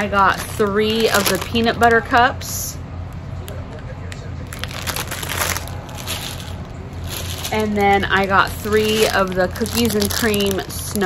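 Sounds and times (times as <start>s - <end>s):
plastic packaging crinkling: 0.0s - 2.0s, 4.4s - 11.0s.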